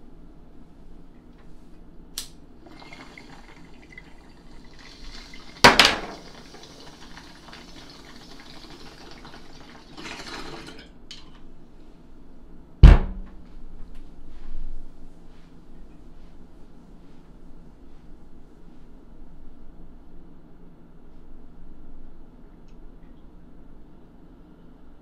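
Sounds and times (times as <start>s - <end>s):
water bubbling in a bong: 2.7s - 10.8s
sharp loud knock: 12.8s - 13.3s
heavy thump: 12.8s - 13.5s.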